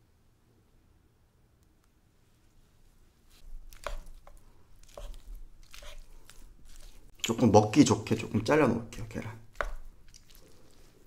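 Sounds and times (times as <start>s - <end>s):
wooden spoon tapping in a bowl: 9.5s - 9.9s.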